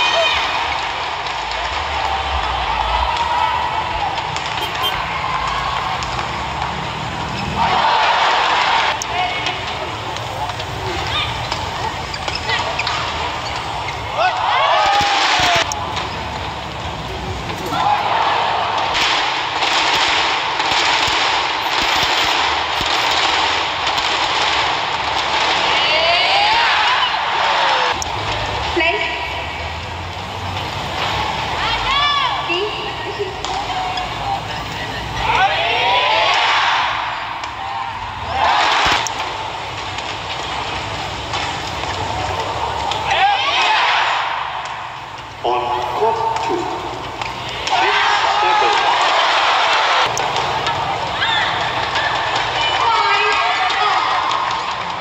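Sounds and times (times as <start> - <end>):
crowd cheering and shouting: 0.0 - 29.9, 30.6 - 55.0.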